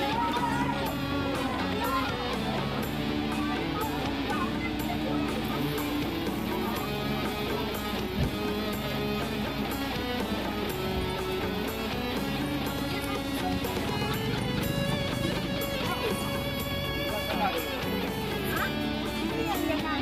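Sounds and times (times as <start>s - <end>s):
guitar music with steady beat: 0.0s - 20.0s.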